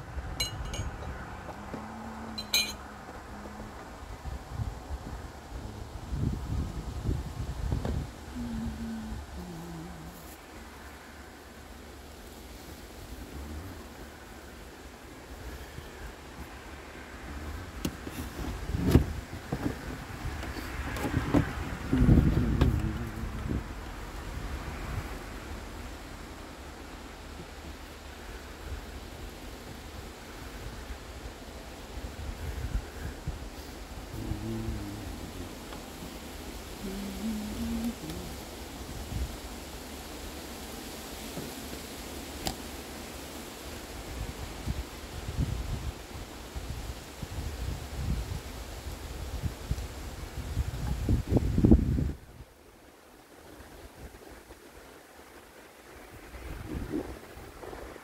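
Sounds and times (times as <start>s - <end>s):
wind buffeting microphone: 0.0s - 40.4s, 43.8s - 52.6s, 55.3s - 58.0s.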